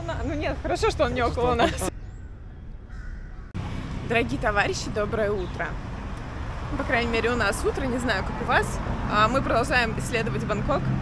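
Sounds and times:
street traffic noise: 0.0 - 11.0
distant bird call: 1.9 - 3.6.

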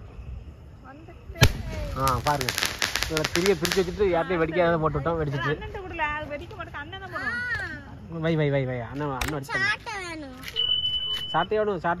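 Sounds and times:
people's voices: 0.8 - 12.0
high-pitched electronic beep: 10.5 - 11.5.

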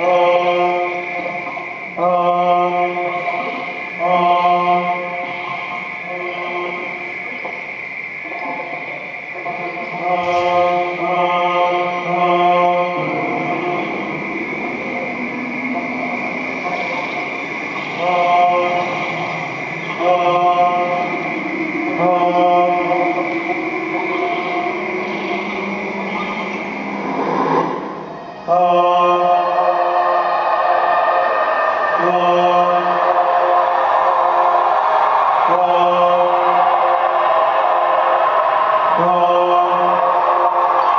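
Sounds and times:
electronic drone music: 0.0 - 40.9.

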